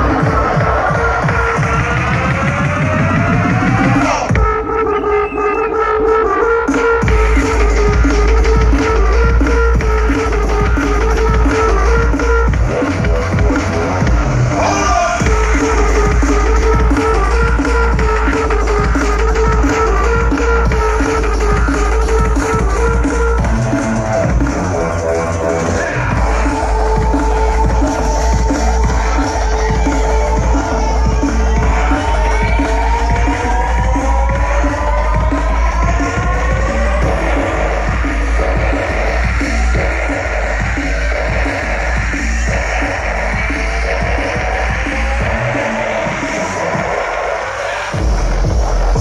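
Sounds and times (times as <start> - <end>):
electronic dance music: 0.0 - 49.0.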